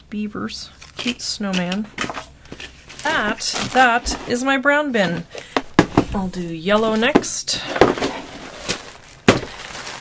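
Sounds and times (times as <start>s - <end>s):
plastic bags rustling: 2.0s - 10.0s.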